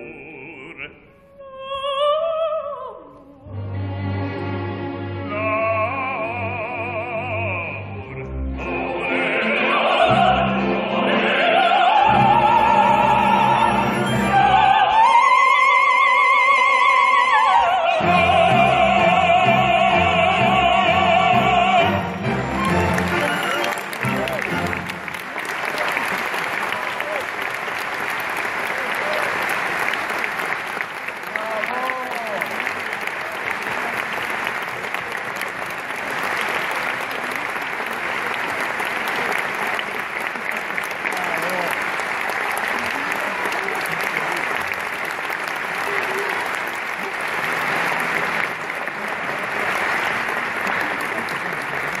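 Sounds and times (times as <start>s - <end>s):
audience applauding: 21.8s - 52.0s.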